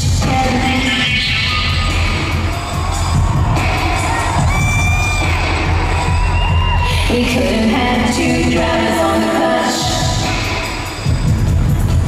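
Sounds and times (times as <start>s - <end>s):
electronic dance music: 0.0s - 12.0s
crowd cheering: 1.5s - 7.5s.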